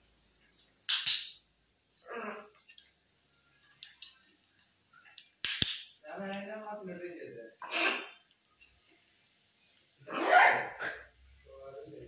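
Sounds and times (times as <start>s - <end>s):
macaw squawking: 7.6s - 8.2s.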